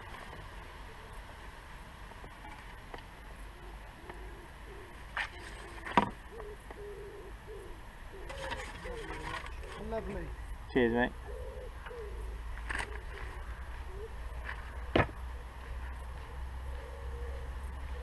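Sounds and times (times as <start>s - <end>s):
pigeon cooing: 3.5s - 10.4s, 11.1s - 18.0s.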